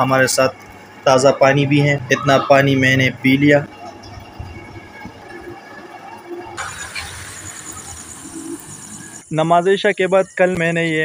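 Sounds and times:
crickets chirring: 0.6 - 11.0.

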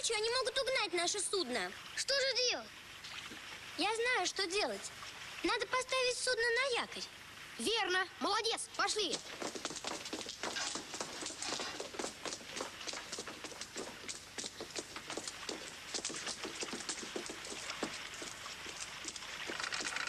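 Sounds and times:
people hurrying footsteps: 8.8 - 20.0.

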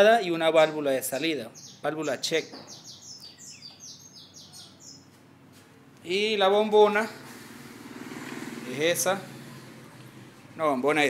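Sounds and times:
small bird chirping: 1.1 - 5.2.

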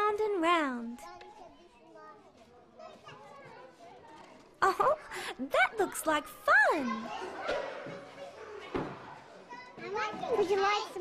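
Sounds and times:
children chattering: 0.8 - 11.0.

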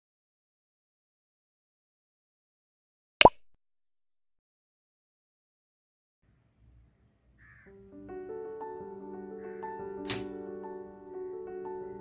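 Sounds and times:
pop with upward pitch glide: 3.2 - 3.5.

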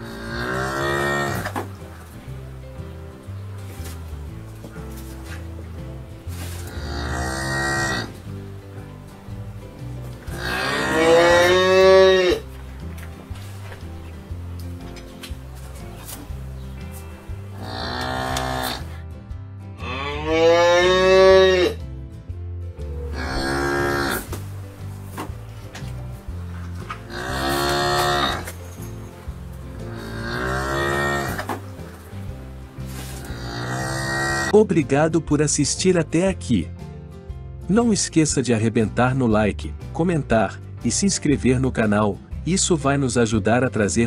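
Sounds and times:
cow mooing: 0.0 - 1.6, 6.6 - 8.2, 10.3 - 12.4, 17.6 - 18.9, 19.8 - 21.8, 22.8 - 24.3, 27.0 - 28.5, 29.9 - 31.5, 33.2 - 34.5.

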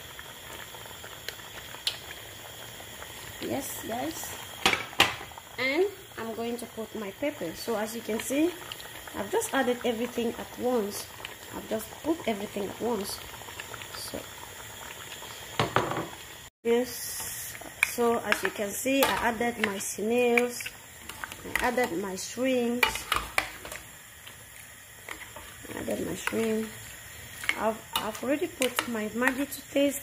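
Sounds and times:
pot bubbling softly: 0.0 - 30.0.

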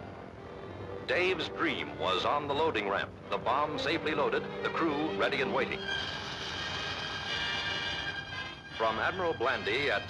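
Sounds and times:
propeller plane engines droning: 0.0 - 10.0.

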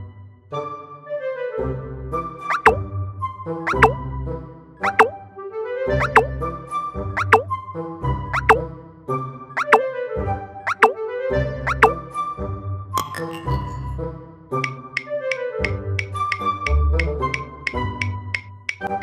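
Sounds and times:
playful cartoon music: 1.7 - 8.8, 9.6 - 9.9, 10.7 - 12.2, 13.0 - 19.0
sliding plop sound effects: 2.5 - 2.8, 3.7 - 4.0, 4.8 - 5.2, 6.0 - 6.3, 7.2 - 7.5, 8.4 - 8.6, 9.6 - 9.8, 10.7 - 11.0, 11.7 - 12.0.

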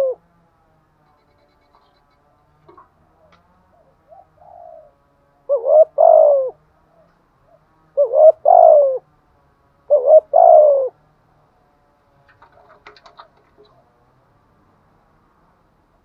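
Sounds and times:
dove cooing: 0.0 - 0.3, 1.6 - 9.1, 9.8 - 11.0, 12.2 - 14.2.

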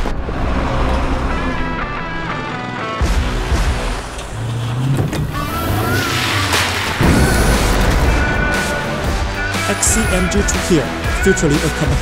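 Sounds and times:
dramatic music: 0.0 - 12.0
truck engine rumble: 0.0 - 12.0
rising whoosh: 3.3 - 9.2
low hit: 6.6 - 9.4.

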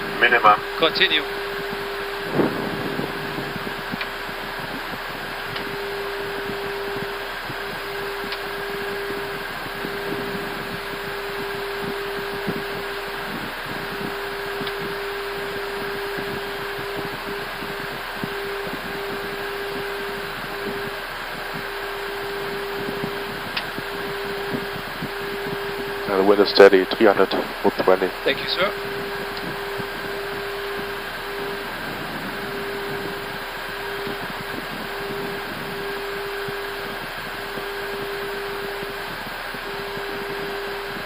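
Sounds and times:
constant cockpit hum: 0.0 - 41.0.

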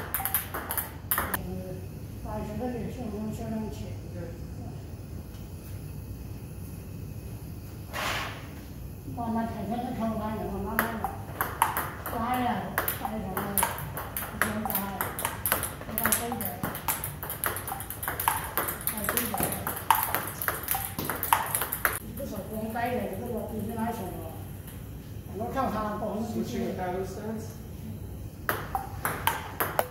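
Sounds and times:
table tennis ball hits: 0.0 - 1.4, 10.7 - 22.0, 28.4 - 29.9.

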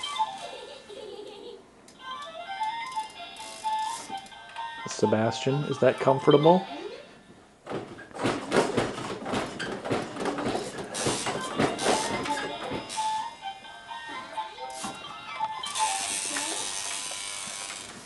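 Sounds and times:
plastic toys clattering and rattling: 8.2 - 13.2
electronic toy tune: 11.8 - 16.7.

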